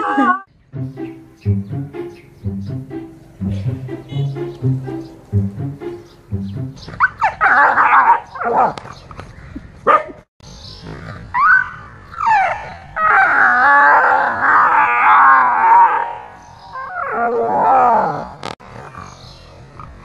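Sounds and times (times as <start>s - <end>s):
dog barking: 7.0s - 8.8s, 9.8s - 10.2s.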